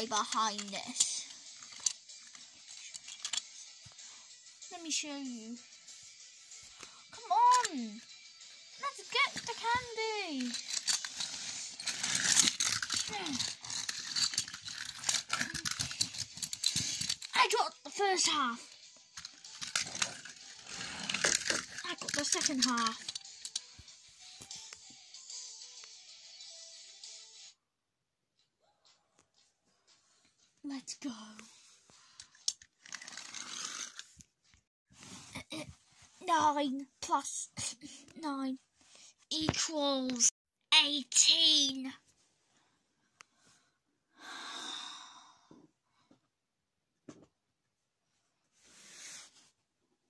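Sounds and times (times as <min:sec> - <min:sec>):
child's voice: 0:00.0 - 0:01.3, 0:04.7 - 0:05.6, 0:07.1 - 0:08.1, 0:08.8 - 0:10.6, 0:12.9 - 0:13.6, 0:17.2 - 0:18.7, 0:21.8 - 0:23.1, 0:30.6 - 0:31.5, 0:35.4 - 0:38.6, 0:39.3 - 0:42.0
plastic toy clicking and scraping: 0:00.0 - 0:03.6, 0:08.8 - 0:18.4, 0:19.2 - 0:23.9, 0:32.2 - 0:34.2.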